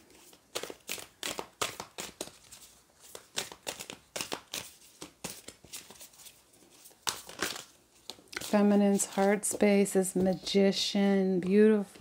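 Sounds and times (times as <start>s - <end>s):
cards being shuffled: 0.0s - 10.7s.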